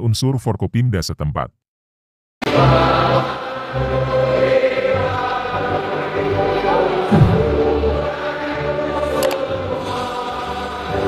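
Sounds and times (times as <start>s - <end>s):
crowd singing in unison: 2.4s - 11.0s.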